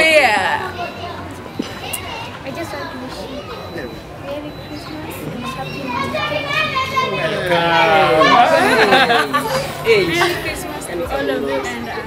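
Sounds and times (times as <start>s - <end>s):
young people talking: 0.0s - 12.0s.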